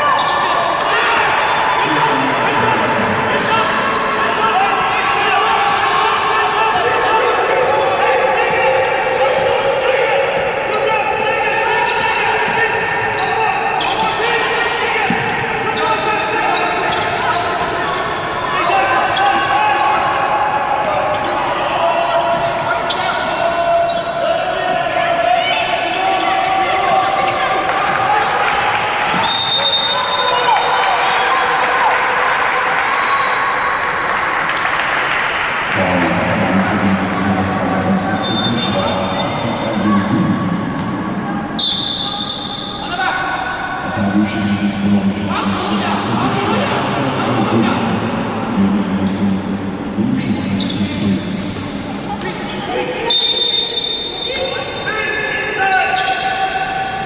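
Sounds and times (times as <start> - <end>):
people calling out: 0.0 - 31.4
referee's whistle: 28.8 - 30.9, 38.2 - 39.3, 41.6 - 43.0, 53.0 - 54.9.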